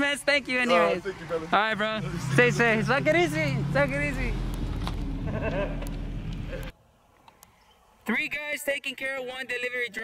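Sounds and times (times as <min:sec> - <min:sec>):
moving vehicle rumble: 0:00.1 - 0:06.8.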